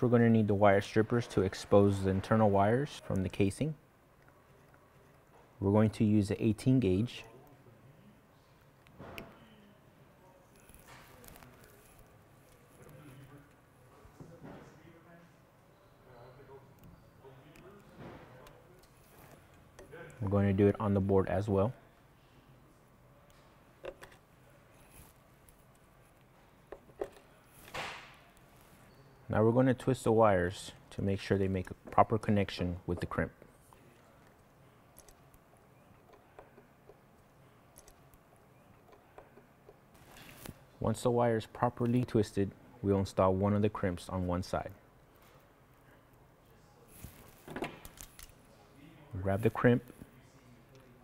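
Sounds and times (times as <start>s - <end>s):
insulation rustle: 39.9s - 40.7s.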